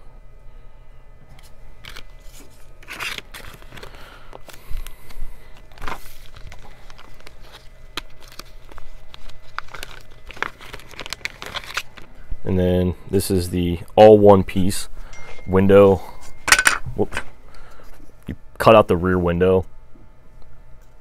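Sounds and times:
plastic bags crinkling: 1.8s - 12.2s.

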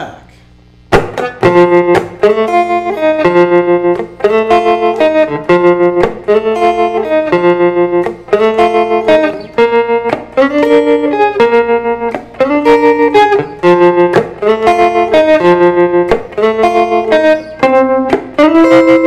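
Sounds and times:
electric guitar with tremolo: 0.0s - 19.0s.

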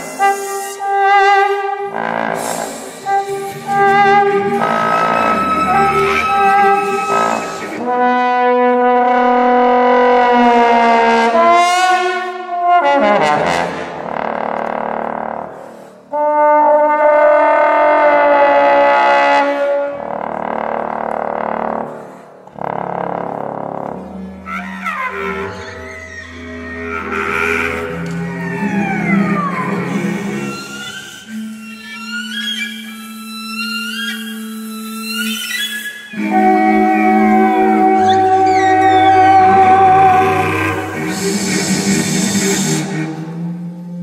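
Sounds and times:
bass trombone holding long notes: 0.0s - 22.0s, 22.6s - 30.7s, 36.2s - 44.0s
bowed cello: 0.0s - 44.0s.

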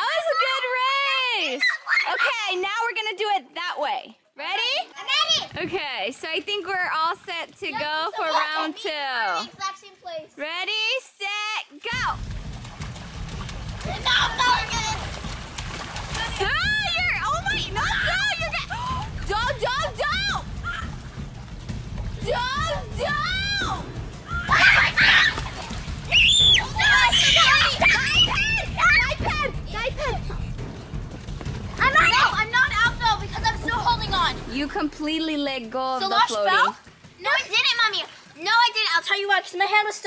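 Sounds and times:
children shrieking: 1.6s - 2.3s, 24.3s - 25.6s, 26.2s - 29.2s
water splashing: 11.9s - 39.7s
low rumble and hiss: 12.0s - 35.8s.

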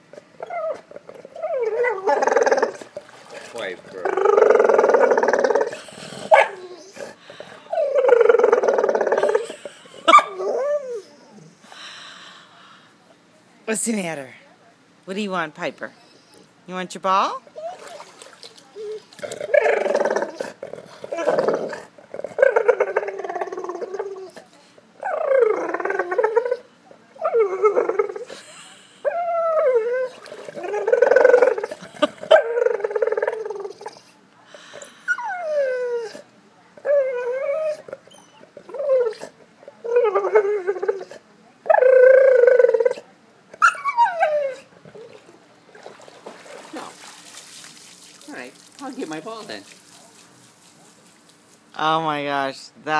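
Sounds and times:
dog whining: 0.4s - 2.8s, 4.0s - 11.5s, 16.0s - 16.5s, 17.5s - 18.1s, 18.8s - 24.4s, 25.0s - 28.3s, 29.0s - 34.2s, 35.1s - 45.2s.

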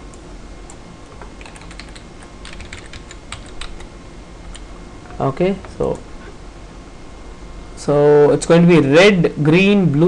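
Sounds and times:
computer keyboard typing: 1.3s - 3.9s.

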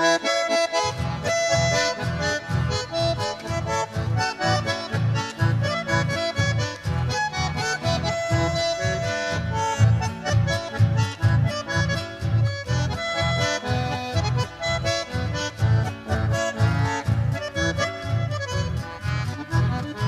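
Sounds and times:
bandoneon melody: 0.0s - 20.0s
guitar: 0.0s - 20.0s
plucked bass notes: 0.0s - 20.0s.

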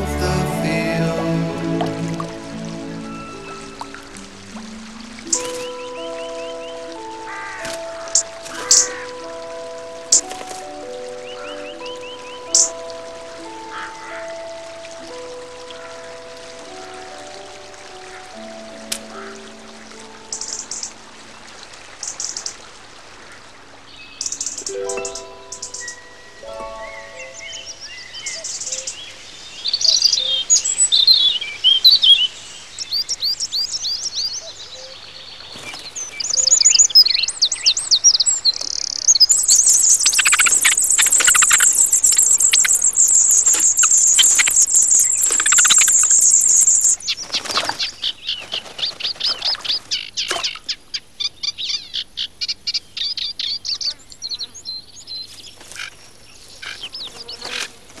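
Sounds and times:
nestlings begging chorus: 0.0s - 9.4s, 11.2s - 12.9s, 33.0s - 54.5s
songbirds singing: 0.0s - 58.0s
rapid short chirps: 39.3s - 47.0s.

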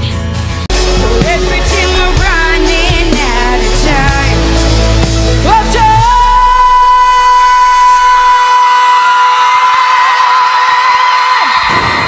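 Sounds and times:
band accompaniment: 0.0s - 7.0s
woman singing live: 1.0s - 4.6s, 5.4s - 9.4s.

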